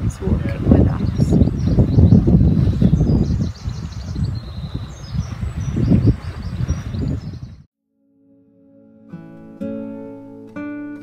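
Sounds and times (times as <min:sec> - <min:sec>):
robin singing: 0:00.0 - 0:07.6
wind buffeting microphone: 0:00.0 - 0:07.7.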